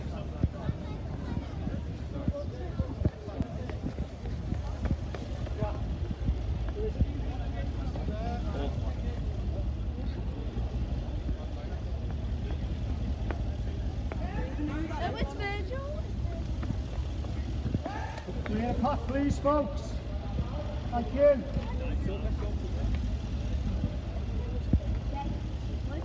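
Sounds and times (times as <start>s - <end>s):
footsteps: 0.0s - 8.8s
people talking: 0.0s - 26.0s.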